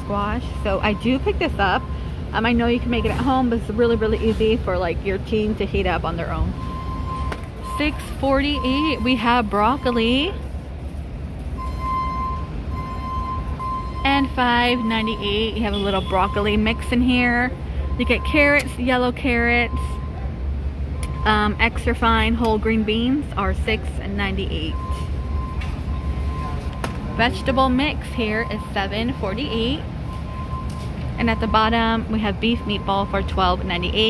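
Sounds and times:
store background rumble: 0.0 - 34.0.

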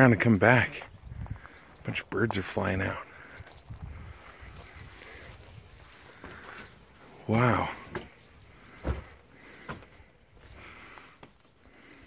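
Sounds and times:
heavy thump: 8.8 - 9.9.

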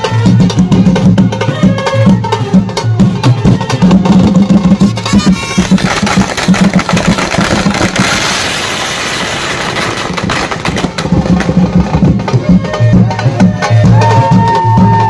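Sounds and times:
drum beating fast rhythm: 0.0 - 15.0.

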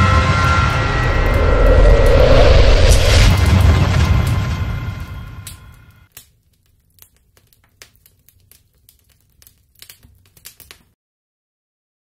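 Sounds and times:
deep steady rumble: 0.0 - 6.0
whoosh: 0.0 - 6.0.

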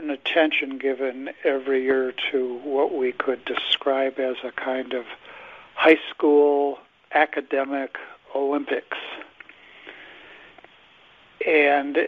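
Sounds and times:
person speaking: 0.0 - 5.2, 5.8 - 9.4, 11.4 - 12.0
person breathing: 5.2 - 5.8, 9.5 - 10.7.

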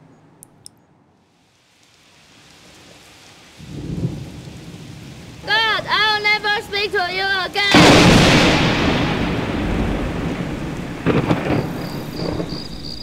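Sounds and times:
rain: 1.1 - 13.0
low rumble of thunder: 3.6 - 6.4, 7.7 - 13.0.

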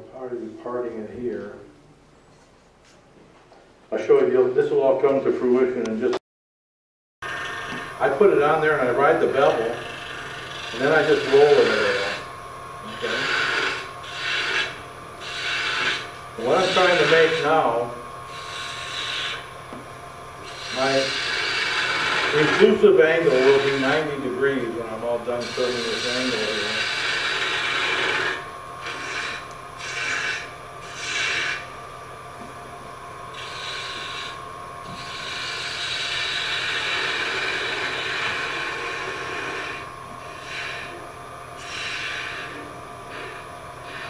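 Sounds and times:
lathe tool scraping wood: 7.2 - 19.6, 20.4 - 31.7, 33.3 - 44.0.

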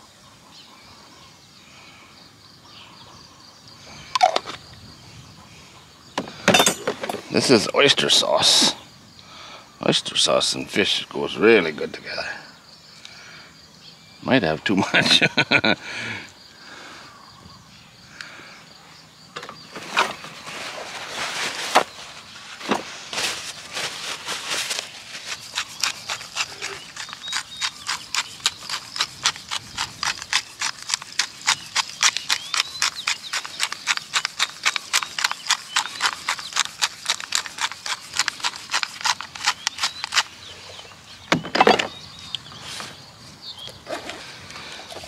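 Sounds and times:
pepper mill grinding clicks: 25.5 - 40.3.

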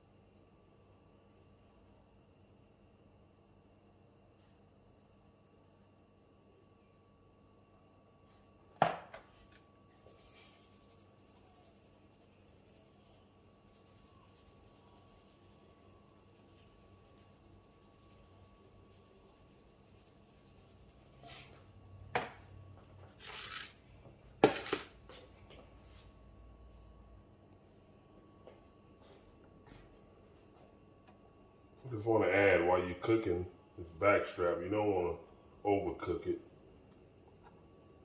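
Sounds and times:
containers knocking on countertop: 8.8 - 9.2.

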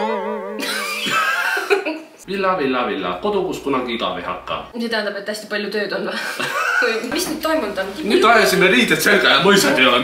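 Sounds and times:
wavering sung voice note: 0.0 - 0.7
man and woman laughing: 0.6 - 2.2, 6.1 - 7.1.

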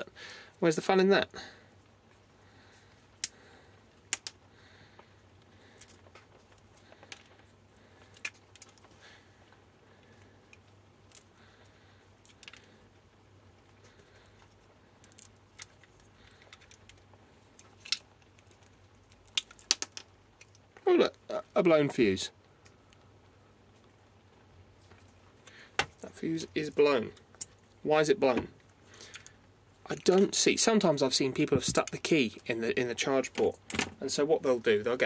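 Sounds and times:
sharp plastic snaps: 4.1 - 4.4, 15.0 - 20.8.

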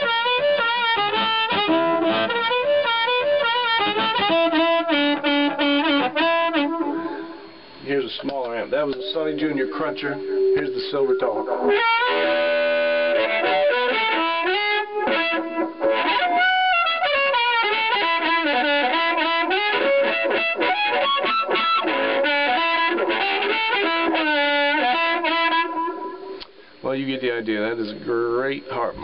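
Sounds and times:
amplified blues harmonica: 0.0 - 26.8.

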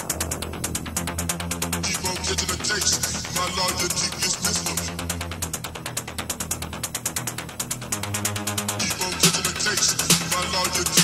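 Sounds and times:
electronic dance music: 0.0 - 11.0.

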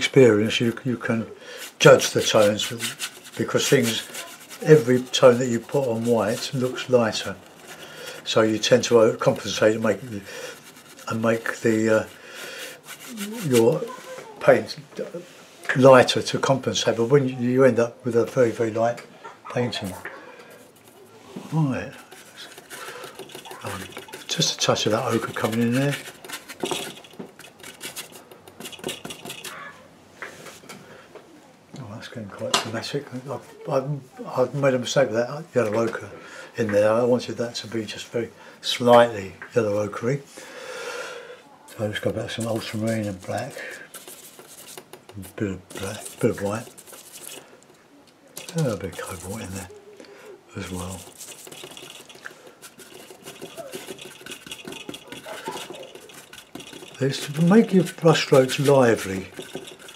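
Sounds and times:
paintbrush scratchy strokes: 1.6 - 14.7, 19.7 - 29.7, 41.7 - 47.7, 48.4 - 49.8, 50.5 - 59.9.

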